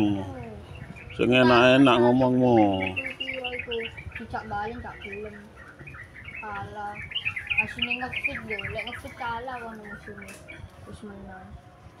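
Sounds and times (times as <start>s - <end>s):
people talking quietly: 0.0s - 12.0s
small birds chirping: 0.0s - 12.0s.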